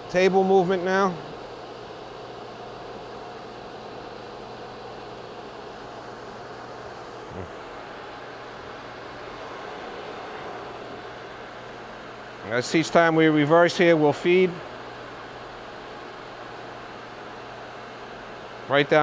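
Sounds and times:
grinder machine humming: 2.4 - 17.5.

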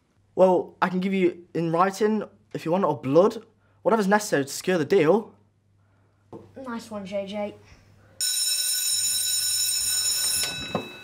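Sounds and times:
shrill electric bell ringing: 8.2 - 11.0.

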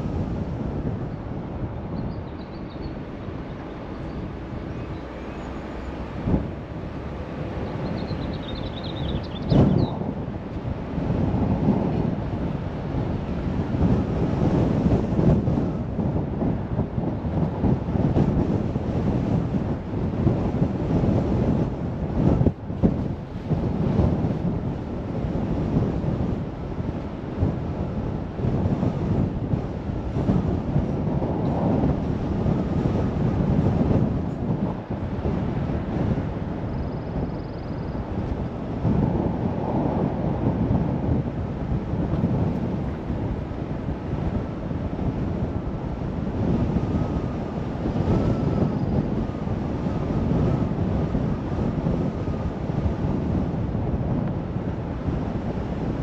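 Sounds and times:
car road and engine rumble: 0.0 - 56.0
wind rumbling on microphone: 0.0 - 56.0.

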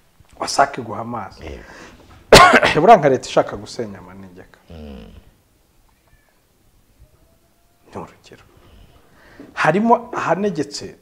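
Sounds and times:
faint high squeak: 5.9 - 7.9.

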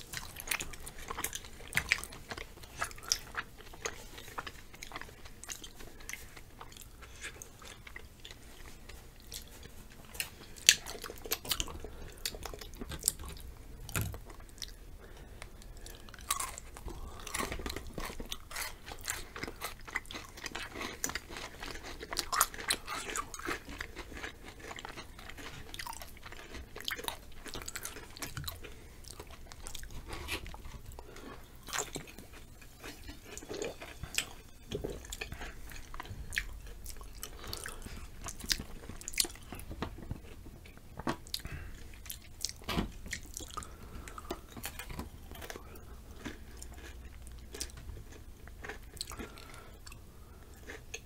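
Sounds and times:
crunching chips: 0.0 - 51.0.

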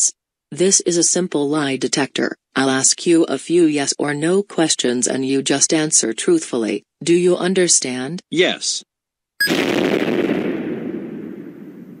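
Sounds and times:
cartoon explosion: 9.4 - 12.0.

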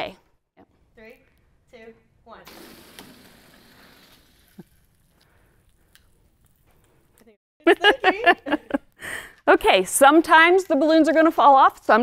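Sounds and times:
air hissing out of balloons: 2.5 - 5.0.

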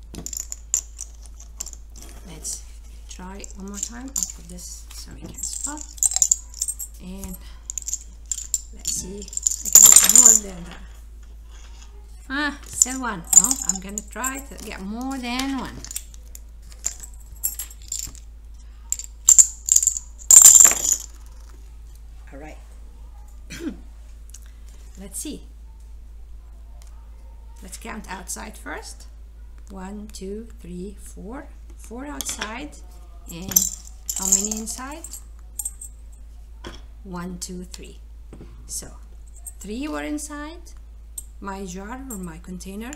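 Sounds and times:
plastic chips clicking: 19.0 - 21.2.

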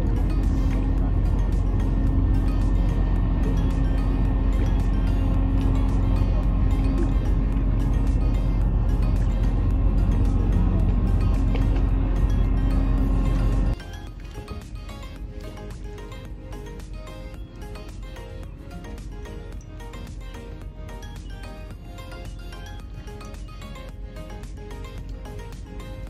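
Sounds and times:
background music: 0.0 - 26.0
low rumble: 0.0 - 26.0.

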